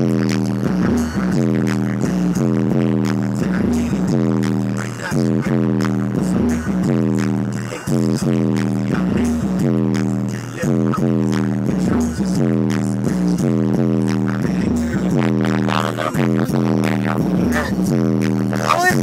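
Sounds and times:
bass-heavy music on car stereo: 0:00.0 - 0:19.0.

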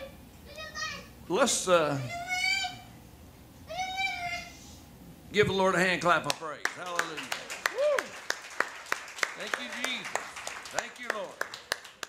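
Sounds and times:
child squealing: 0:03.7 - 0:04.6.

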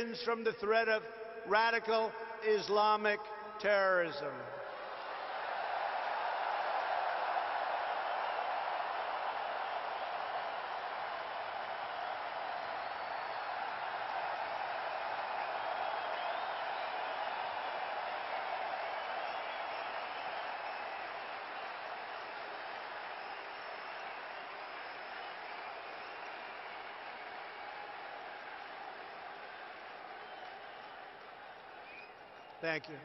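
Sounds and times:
stadium crowd applauding and cheering: 0:00.0 - 0:33.0
faint whistles: 0:23.1 - 0:27.3, 0:30.1 - 0:31.0, 0:31.7 - 0:32.7.

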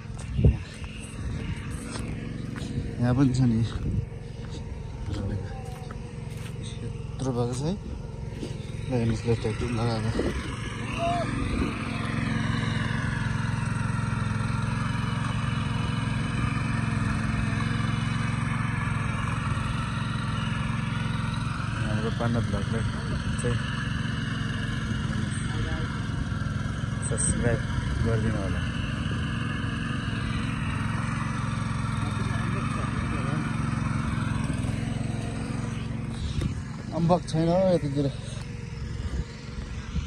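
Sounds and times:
voices: 0:00.0 - 0:14.4, 0:19.1 - 0:39.8
power tiller engine droning: 0:00.0 - 0:40.0.

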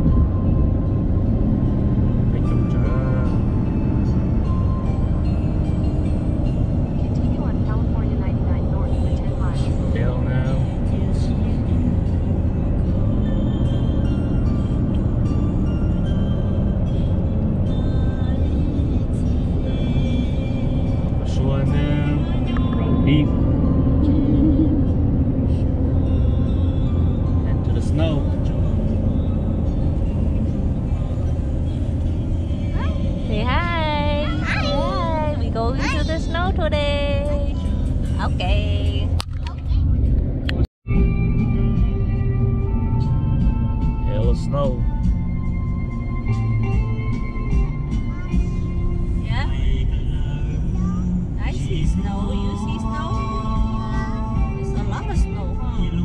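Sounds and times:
background music: 0:00.0 - 0:56.0
car road rumble: 0:00.0 - 0:56.0.

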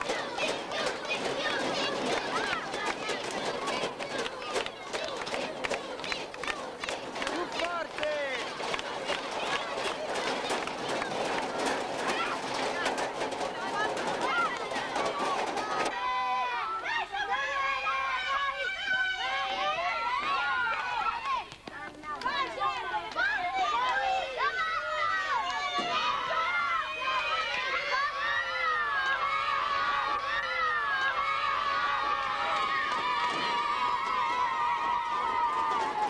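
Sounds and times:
children clapping: 0:00.0 - 0:16.2, 0:20.1 - 0:36.0
children chanting: 0:00.0 - 0:21.4, 0:22.1 - 0:36.0
children shouting: 0:00.0 - 0:36.0.

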